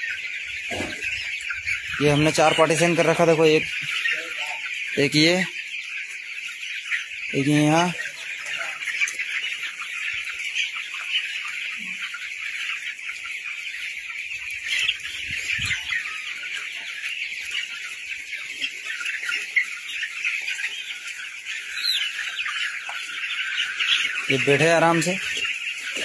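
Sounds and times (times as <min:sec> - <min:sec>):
chicks peeping: 0:00.0 - 0:26.0.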